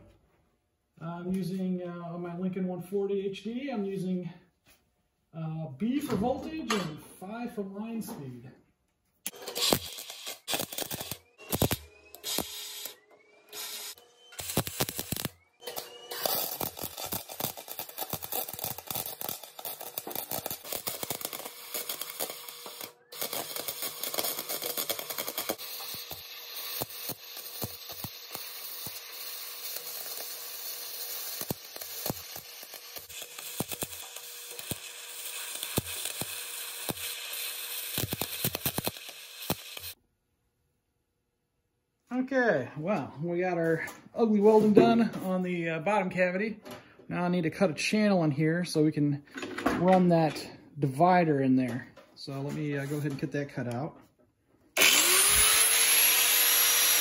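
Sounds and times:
arc welding crackle: 0:09.3 - 0:40.0, 0:54.8 - 0:57.0.

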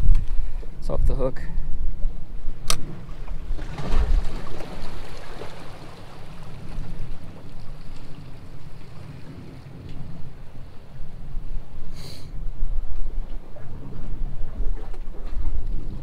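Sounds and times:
wind buffeting microphone: 0:00.0 - 0:16.0
waves washing against rocks: 0:02.8 - 0:10.7.

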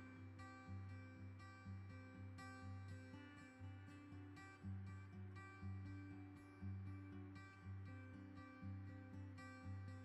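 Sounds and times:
plucked acoustic guitar: 0:00.0 - 0:10.0.

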